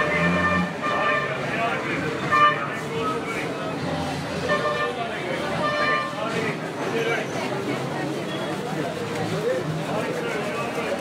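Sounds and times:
vehicle horns tooting: 0.0s - 3.4s, 4.4s - 7.3s
crowd talking: 0.0s - 11.0s.

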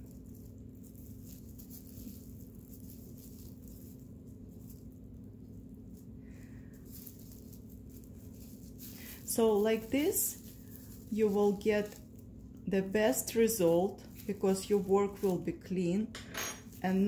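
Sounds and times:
plastic yarn crinkling: 0.0s - 17.0s
steady low hum: 0.0s - 17.0s.

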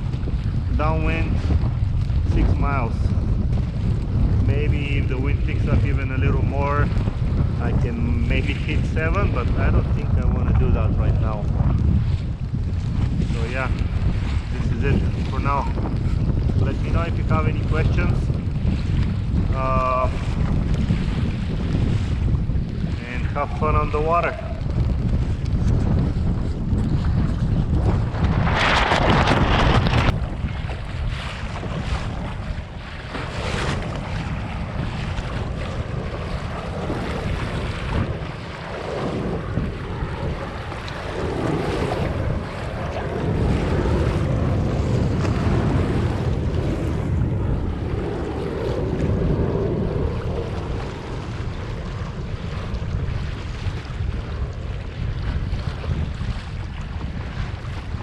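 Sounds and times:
water splashing against hull: 0.0s - 58.0s
wind buffeting microphone: 0.0s - 58.0s.

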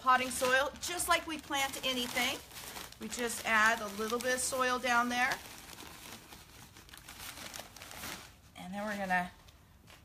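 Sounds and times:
plastic bag crinkling: 0.0s - 9.5s.

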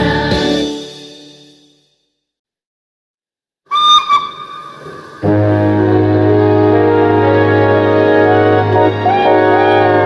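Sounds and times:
steam locomotive whistle toots: 3.7s - 5.7s.

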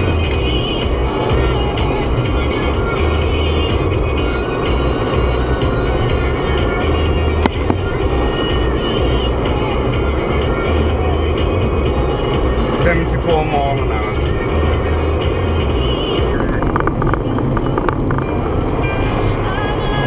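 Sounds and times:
car road and engine noise: 0.0s - 20.0s
music: 0.0s - 20.0s.

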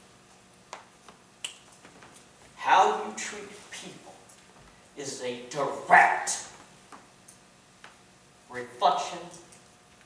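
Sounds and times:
man speaking loudly: 2.6s - 4.2s, 5.0s - 6.6s, 8.5s - 9.4s.

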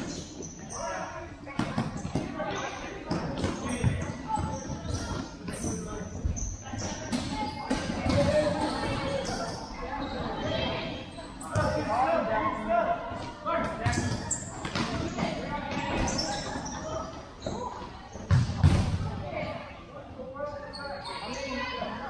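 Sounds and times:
ball kicked and bouncing: 18.3s - 19.0s.

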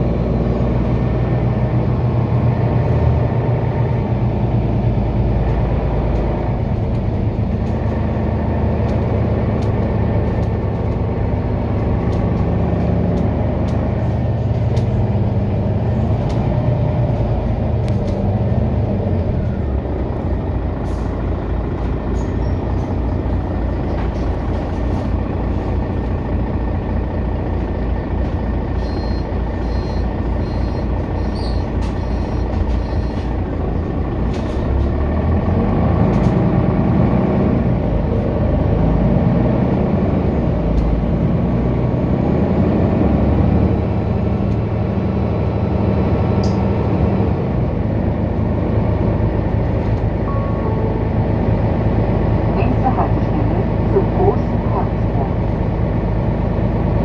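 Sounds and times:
bus engine: 0.0s - 57.0s
road noise: 0.0s - 57.0s.

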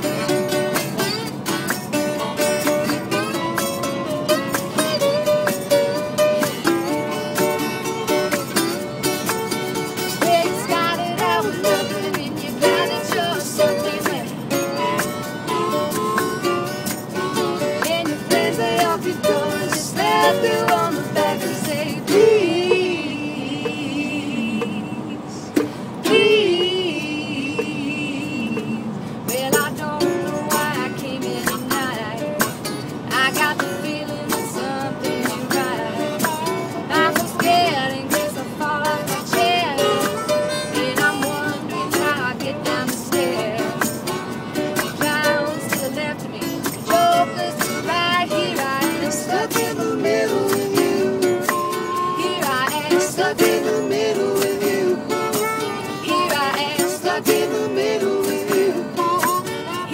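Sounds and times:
acoustic band playing rock: 0.0s - 59.9s
strummed acoustic guitar: 0.0s - 59.9s
wavering melody line: 2.0s - 22.8s.

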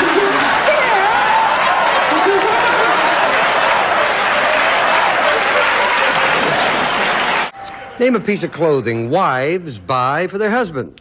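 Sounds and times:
audience applauding: 0.0s - 7.6s
audience laughing: 1.7s - 7.5s.

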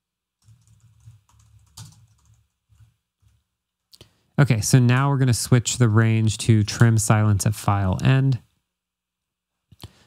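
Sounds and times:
typing on computer keyboard: 0.4s - 3.4s.

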